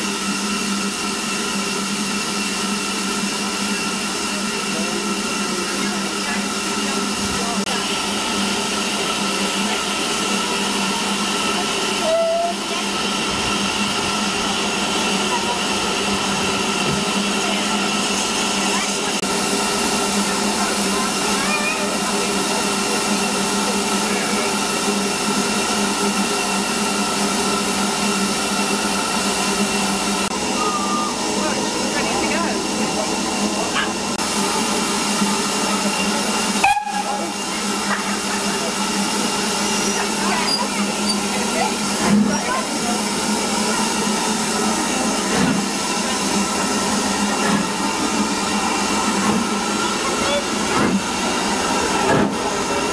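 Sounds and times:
steam hissing from locomotive: 0.0s - 52.9s
brief high tone: 30.5s - 31.2s.

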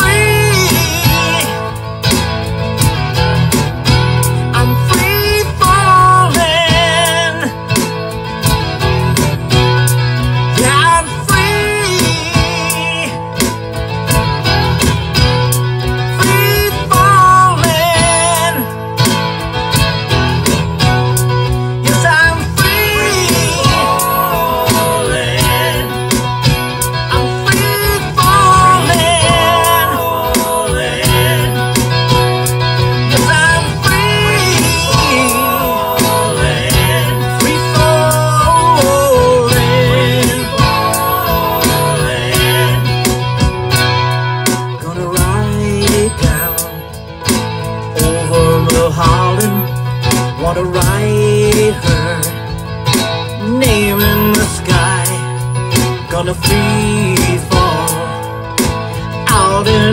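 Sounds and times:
man singing: 0.0s - 1.8s, 4.5s - 7.8s, 10.5s - 13.4s, 16.1s - 18.8s, 21.8s - 32.4s, 33.1s - 43.3s, 44.8s - 46.8s, 47.9s - 52.6s, 53.4s - 59.9s
acoustic guitar strumming: 0.0s - 59.9s
low sustained bass: 0.0s - 59.9s.

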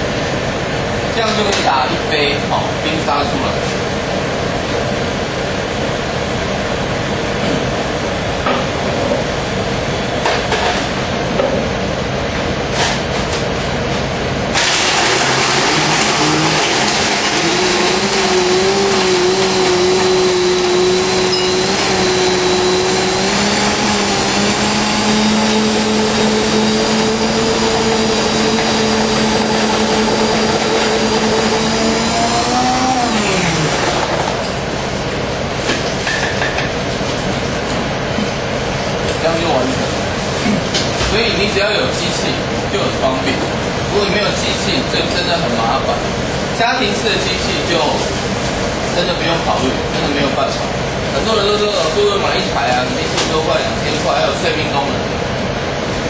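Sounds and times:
steady background hum: 0.0s - 56.0s
blender crushing ice: 14.6s - 34.4s.

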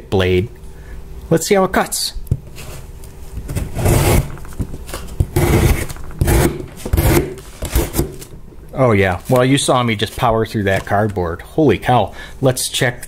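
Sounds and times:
knife slicing cardboard: 3.4s - 4.4s, 5.2s - 8.3s.

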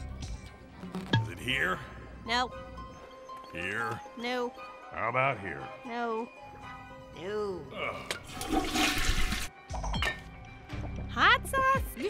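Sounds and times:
background music: 0.0s - 12.0s
toilet flushing: 8.3s - 9.5s.

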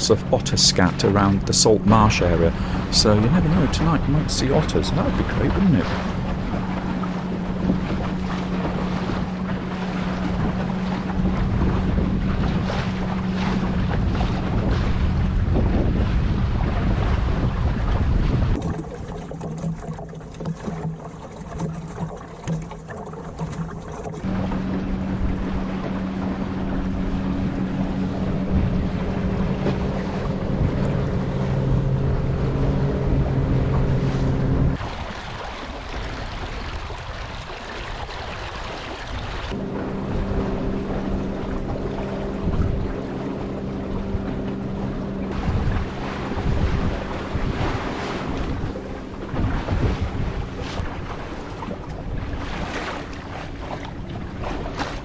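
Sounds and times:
wind buffeting microphone: 0.0s - 18.9s, 24.2s - 55.0s
water rushing past hull: 0.0s - 55.0s.

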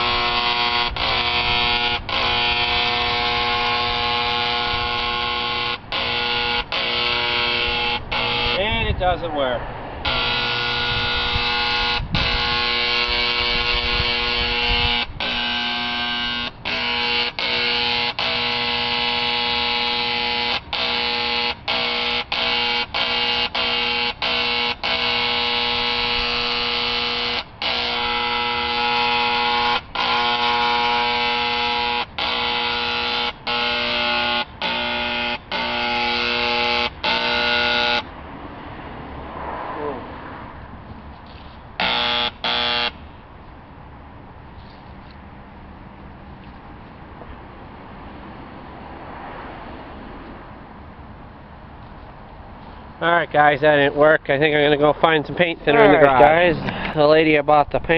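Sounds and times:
electric paint sprayer buzzing: 0.0s - 8.6s, 10.0s - 38.1s, 41.8s - 43.0s.

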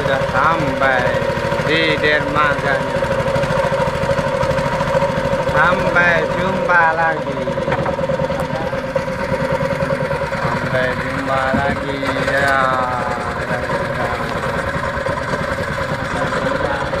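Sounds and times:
boat engine droning: 0.0s - 17.0s.

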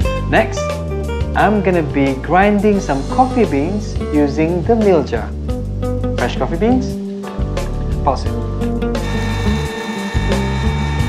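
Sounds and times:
background music: 0.0s - 11.0s
grinding coffee beans: 9.0s - 11.0s
mixer grinder motor whining: 9.0s - 11.0s.

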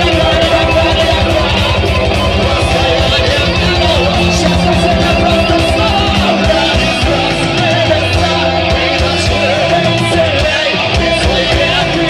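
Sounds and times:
fast low drum pulse: 0.0s - 9.4s
distorted electric guitars: 0.0s - 12.0s.

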